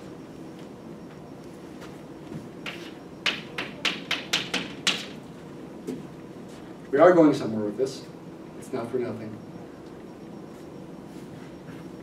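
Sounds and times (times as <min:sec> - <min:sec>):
chalk tapping on a blackboard: 0:02.6 - 0:05.1.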